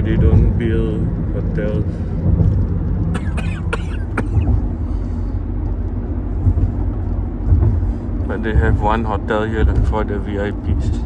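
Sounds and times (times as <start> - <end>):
car road and engine rumble: 0.0 - 11.0
person coughing: 3.1 - 4.6.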